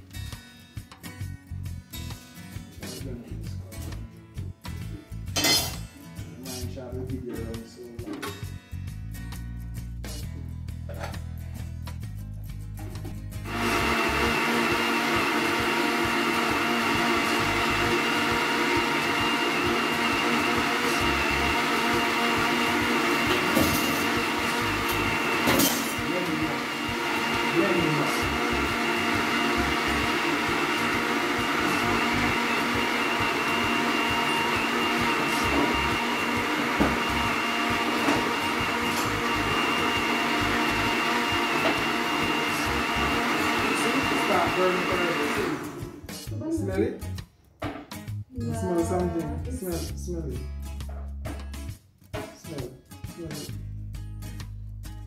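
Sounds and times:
electric blender running: 13.4 - 46.1.

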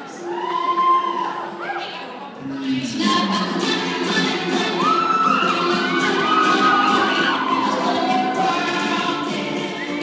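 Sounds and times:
women singing in harmony: 2.9 - 10.0.

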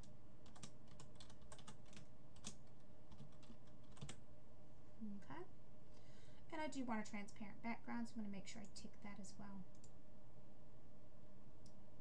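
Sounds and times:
keyboard keys clicking: 0.4 - 4.2.

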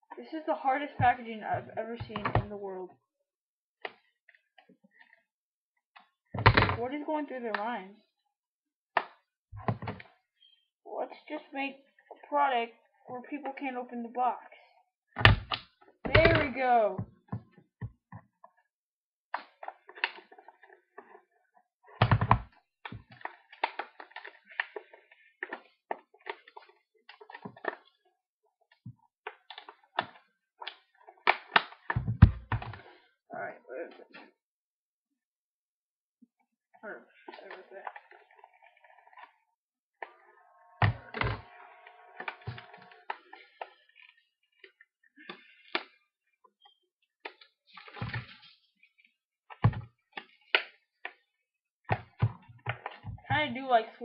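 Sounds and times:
plastic packaging creaking: 40.0 - 45.7.

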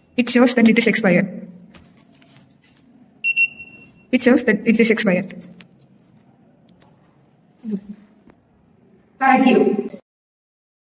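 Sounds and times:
high-pitched electronic beep: 3.2 - 4.1.

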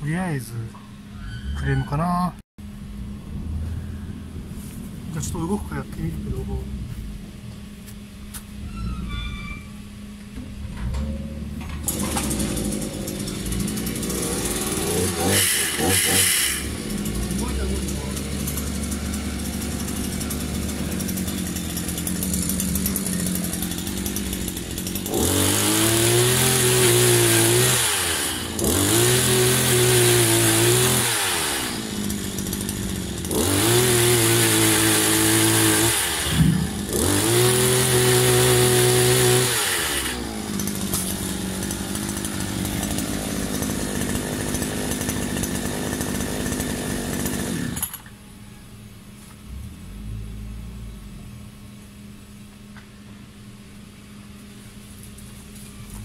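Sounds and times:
small petrol engine idling and revving: 11.0 - 48.1.

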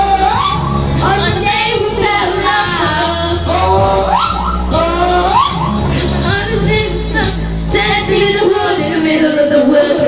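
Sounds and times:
girl singing into a microphone: 0.0 - 10.0
pop karaoke backing track: 0.0 - 10.0.

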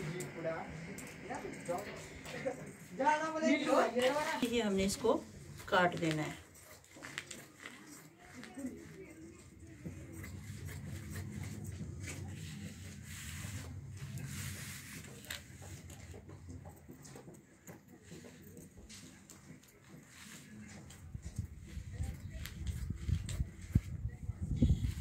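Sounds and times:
cloth rustling: 2.3 - 16.3
low steady hum: 8.6 - 17.0.

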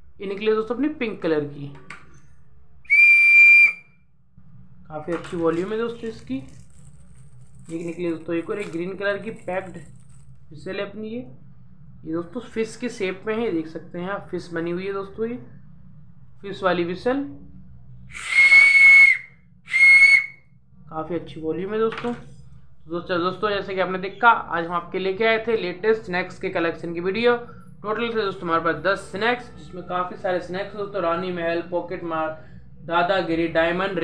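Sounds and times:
shrill toy whistle: 2.9 - 3.8, 18.1 - 20.4.

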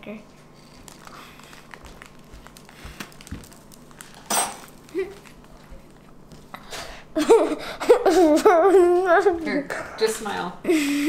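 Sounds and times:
child chewing crackers: 0.5 - 7.0.

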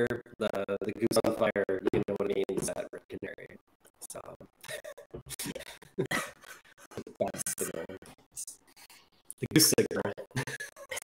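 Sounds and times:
men laughing: 4.7 - 7.8, 9.8 - 11.0.

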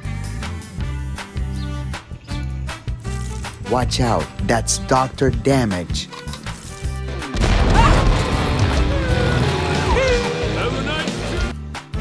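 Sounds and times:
voices: 9.2 - 11.5.

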